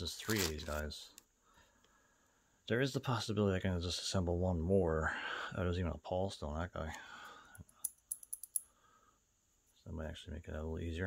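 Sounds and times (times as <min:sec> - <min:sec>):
light sharp metal clicks: 0:07.8 - 0:08.7.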